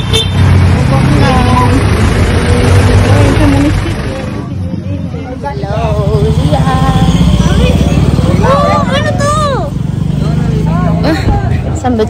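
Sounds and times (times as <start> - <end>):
engine rumbling: 0.0 - 12.0.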